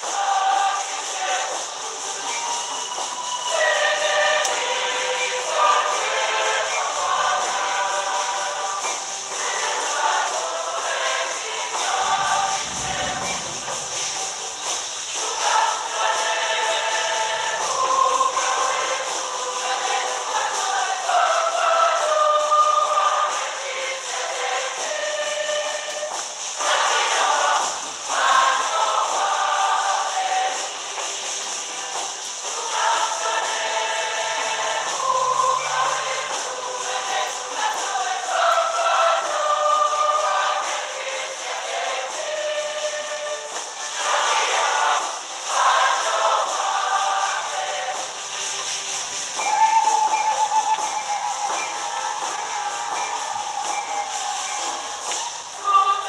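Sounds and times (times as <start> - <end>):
church choir singing a hymn: 0.0 - 56.0.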